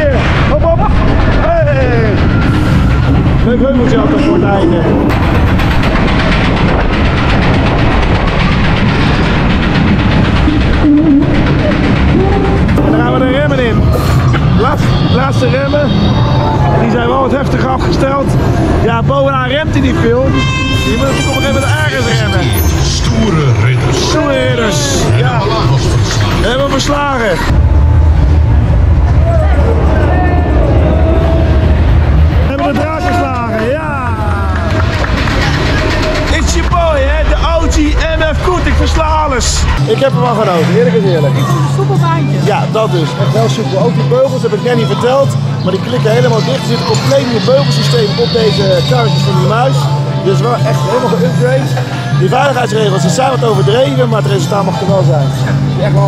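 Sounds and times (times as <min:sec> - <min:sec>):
roller coaster rumbling on track: 0:00.0 - 0:56.0
voices: 0:09.6 - 0:27.6, 0:29.0 - 0:56.0.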